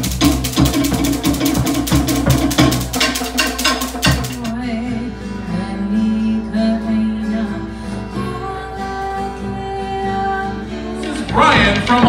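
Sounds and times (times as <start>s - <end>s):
deep drum: 0.0s - 4.5s
wooden log drums: 0.0s - 4.5s, 11.0s - 12.0s.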